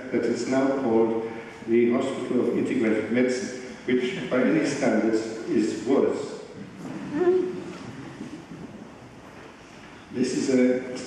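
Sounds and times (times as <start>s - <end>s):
hall background hiss: 0.0s - 6.6s.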